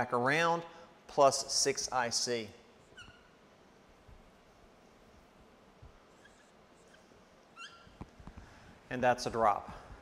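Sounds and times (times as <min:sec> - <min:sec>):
marker tip squeak: 0:02.9 - 0:03.4, 0:06.1 - 0:08.0.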